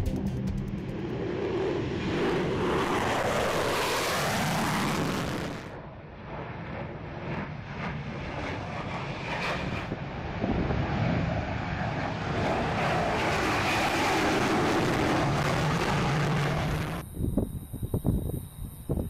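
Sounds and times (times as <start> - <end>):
jet bomber flying low past: 0.0 - 19.0.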